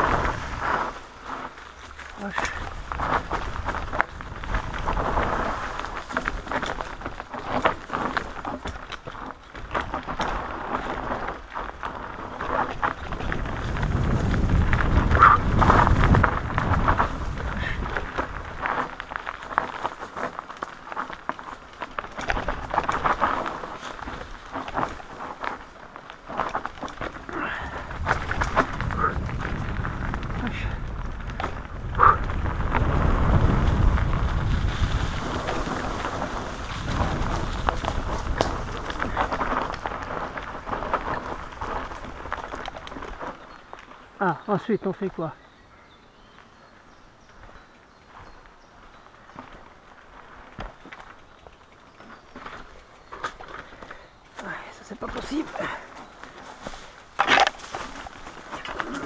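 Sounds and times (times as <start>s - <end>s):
wind rumble on microphone: 0.0s - 20.3s, 22.0s - 43.7s
bike knocks and rattles: 0.0s - 44.0s, 47.4s - 59.0s
bike tyres rolling over dirt: 0.0s - 59.0s.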